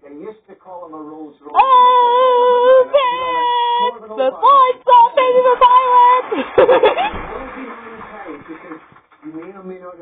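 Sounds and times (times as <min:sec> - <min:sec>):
man's voice from television: 0:00.0 - 0:01.6, 0:02.4 - 0:05.2, 0:07.1 - 0:10.0.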